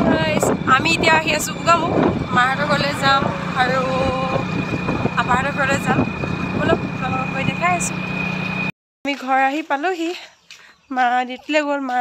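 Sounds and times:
woman talking: 0:00.0 - 0:04.5, 0:05.1 - 0:08.0, 0:09.1 - 0:12.0
engine humming with whine: 0:00.0 - 0:08.7.

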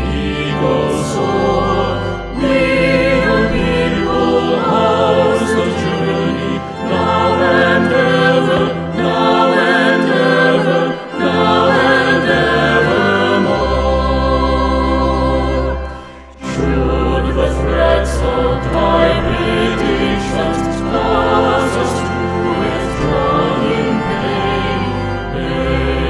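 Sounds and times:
pipe organ: 0:00.0 - 0:26.0
voices singing a hymn: 0:00.0 - 0:26.0.

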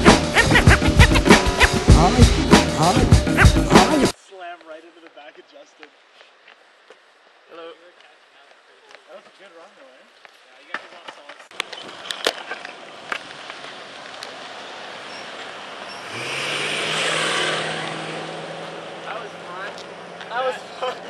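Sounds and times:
longboard wheels rolling on asphalt: 0:08.1 - 0:21.0.

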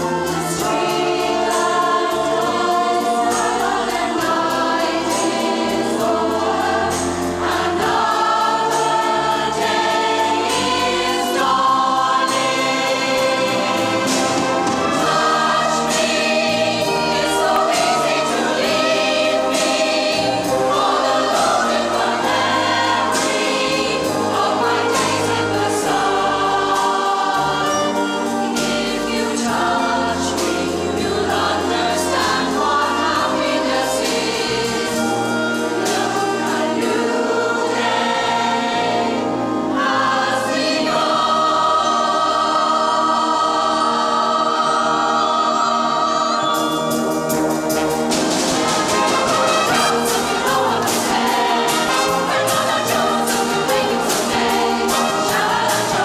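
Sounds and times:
choir singing: 0:00.0 - 0:56.0
wind band playing: 0:00.0 - 0:56.0.

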